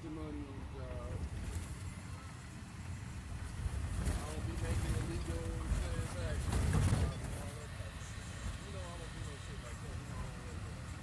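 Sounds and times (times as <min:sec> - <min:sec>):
road and engine rumble in cabin: 0:00.0 - 0:11.0.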